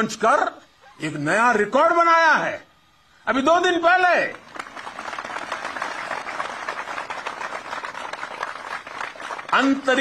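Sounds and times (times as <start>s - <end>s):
audience applauding: 4.3s - 10.0s.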